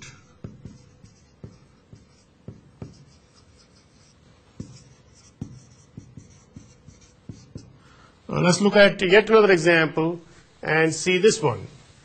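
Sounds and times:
marker tapping and squeaking on whiteboard: 0:00.2 - 0:07.8.

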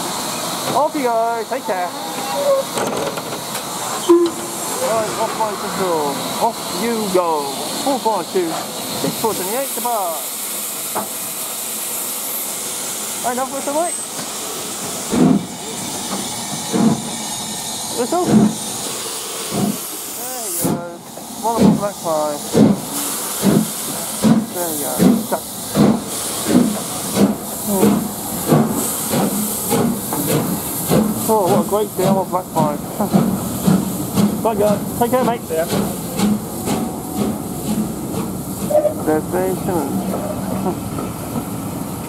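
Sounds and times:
steam locomotive hissing: 0:00.0 - 0:42.0.

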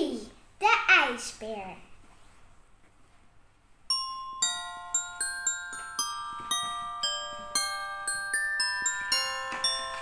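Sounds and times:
bell-like christmas music: 0:03.9 - 0:10.0.

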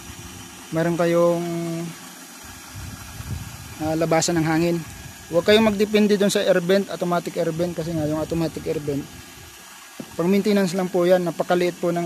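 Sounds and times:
pump motor running: 0:00.0 - 0:12.0.

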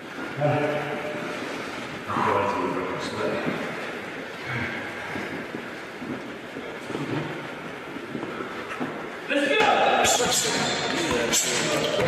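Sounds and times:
gym noise in echoing hall: 0:00.0 - 0:12.0
indistinct voices: 0:09.3 - 0:12.0.

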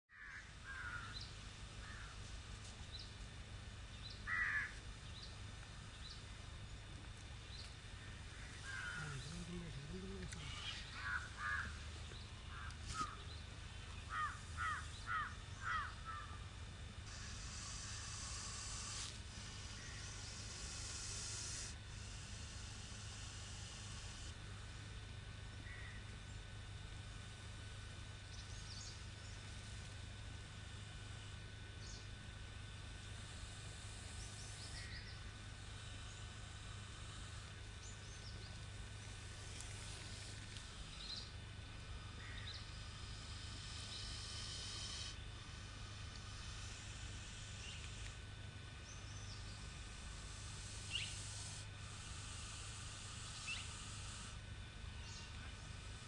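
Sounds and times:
bird calls: 0:00.1 - 0:02.2, 0:03.9 - 0:06.3, 0:07.5 - 0:16.4, 0:25.6 - 0:26.0, 0:34.2 - 0:35.3, 0:42.2 - 0:42.8
low outdoor rumble: 0:00.2 - 0:56.0
steady high hiss: 0:00.2 - 0:56.0.

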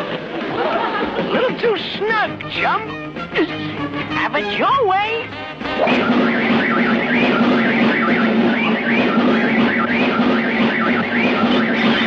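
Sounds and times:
high warbling whistle: 0:05.8 - 0:12.0.

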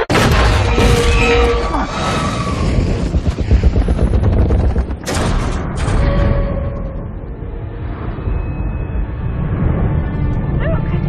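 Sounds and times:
deep explosion rumble: 0:02.0 - 0:06.8
rapid gunfire: 0:02.8 - 0:05.7.

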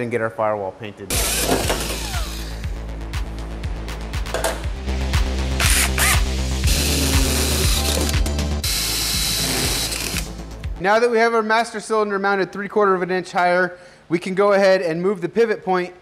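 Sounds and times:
cordless drill boring into metal: 0:01.1 - 0:02.6, 0:05.6 - 0:10.3
background music with steady beat: 0:01.1 - 0:11.6.

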